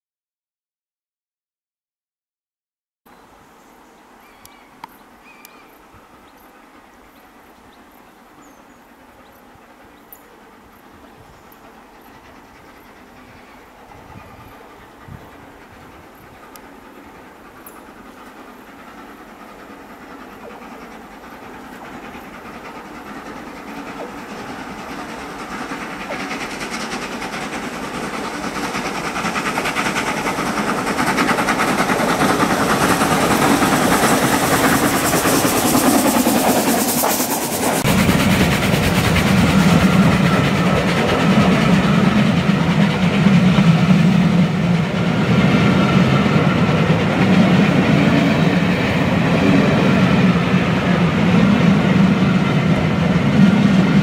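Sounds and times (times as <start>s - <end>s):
steam locomotive passing: 3.2s - 54.0s
train wheels clattering on rails: 9.1s - 54.0s.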